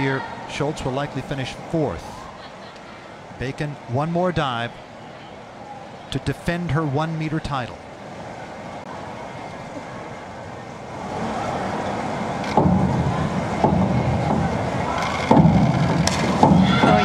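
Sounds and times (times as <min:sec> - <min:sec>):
echoing crowd murmur: 0:00.0 - 0:17.0
springboard thumps: 0:12.6 - 0:17.0.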